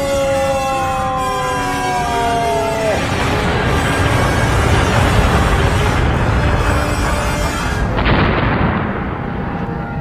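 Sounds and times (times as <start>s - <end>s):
explosion blast: 2.9s - 10.0s.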